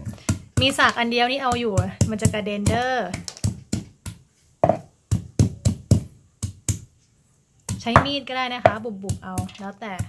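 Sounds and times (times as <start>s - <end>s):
stone pestle pounding garlic: 0.0s - 6.9s, 7.7s - 10.0s.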